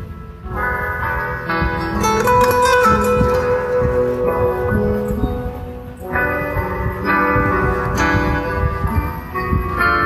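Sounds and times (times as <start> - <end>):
instrumental karaoke backing music: 0.0 - 10.0.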